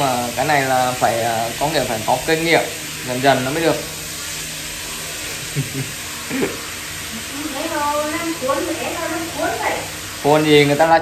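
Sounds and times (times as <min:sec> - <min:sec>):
steady hiss: 0:00.0 - 0:11.0
man chuckling: 0:05.3 - 0:06.6
man speaking: 0:10.2 - 0:11.0.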